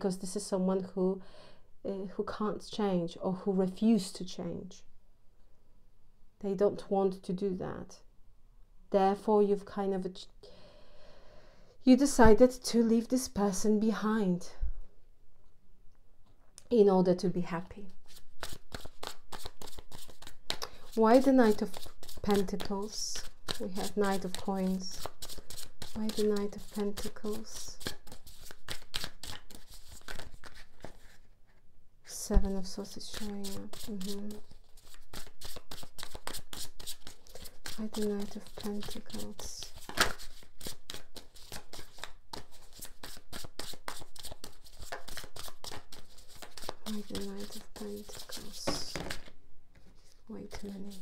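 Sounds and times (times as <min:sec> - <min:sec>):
cards being shuffled by hand: 0:18.0 - 0:31.6, 0:32.4 - 0:51.0.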